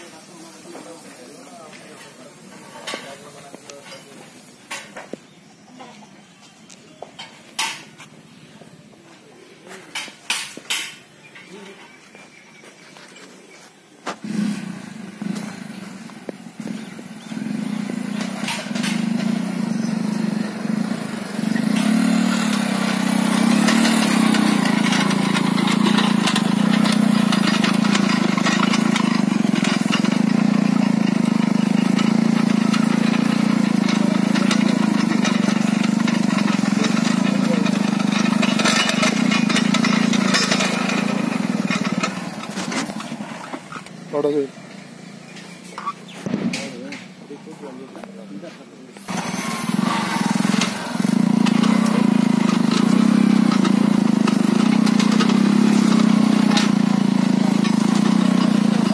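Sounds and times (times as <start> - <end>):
farm machine engine running: 14.2 - 47.8, 49.0 - 58.9.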